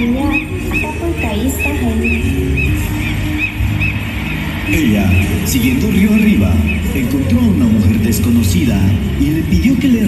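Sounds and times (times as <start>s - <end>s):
music with low notes: 0.0s - 10.0s.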